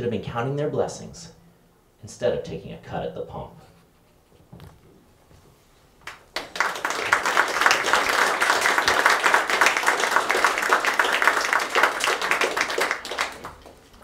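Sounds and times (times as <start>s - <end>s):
audience applauding: 6.0s - 14.0s.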